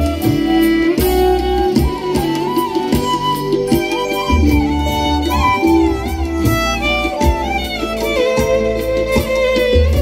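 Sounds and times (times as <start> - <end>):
bamboo flute melody: 0.0 - 10.0
bass: 0.0 - 10.0
hand drums: 0.0 - 10.0.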